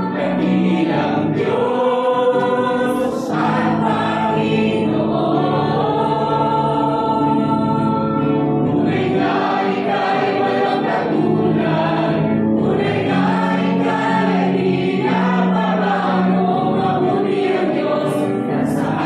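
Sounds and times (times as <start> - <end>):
congregation singing: 0.0 - 19.0
people singing into microphones: 0.0 - 19.0.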